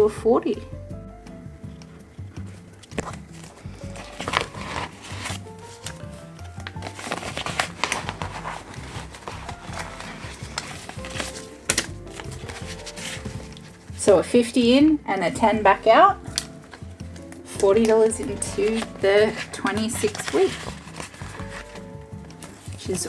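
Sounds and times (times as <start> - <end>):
background music with light beat: 0.0 - 23.0
plastic pockets and banknotes crinkling: 2.5 - 14.1, 16.2 - 23.0.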